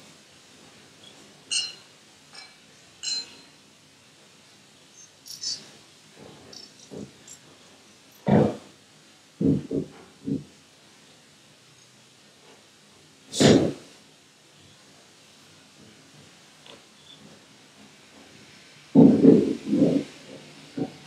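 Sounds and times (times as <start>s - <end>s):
light metal clinks: 1.5s - 3.6s, 5.0s - 5.6s, 6.4s - 8.3s
dull knocks and thumps: 8.3s - 8.7s, 9.4s - 10.5s, 19.0s - 20.1s.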